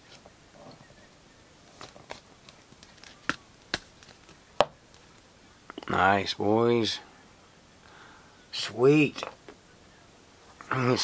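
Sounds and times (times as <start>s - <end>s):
card rustling: 1.7s - 5.2s.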